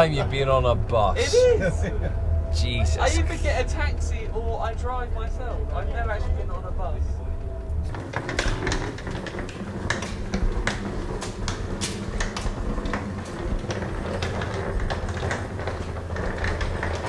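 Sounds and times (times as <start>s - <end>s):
wheeled suitcase rolling: 5.6s - 17.0s
footsteps on paving: 9.4s - 14.1s.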